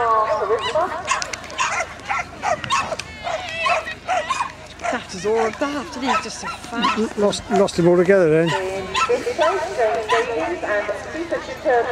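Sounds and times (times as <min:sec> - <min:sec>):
dog barking and yipping: 0:00.1 - 0:07.7, 0:08.4 - 0:10.4.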